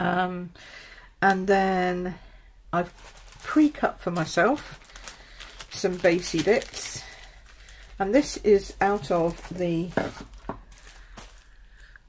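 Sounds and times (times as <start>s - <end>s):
cellophane rustling: 2.8s - 12.0s.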